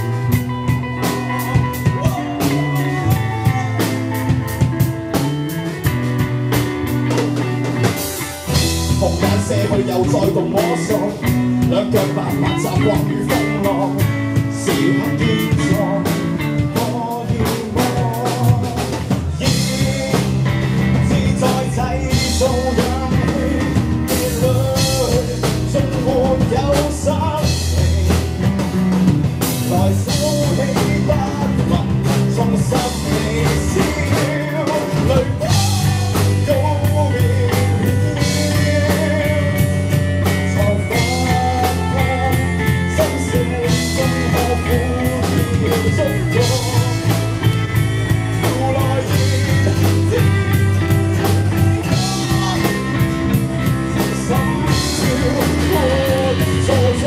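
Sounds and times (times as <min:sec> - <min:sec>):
man singing: 0:00.0 - 0:06.2, 0:07.0 - 0:57.0
bass guitar: 0:00.0 - 0:57.0
drum kit with cymbal crashes: 0:00.0 - 0:57.0
electric guitar: 0:00.0 - 0:57.0.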